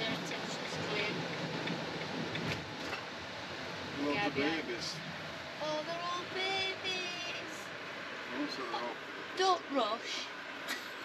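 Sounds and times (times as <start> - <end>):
road and engine noise: 0.0 - 11.0.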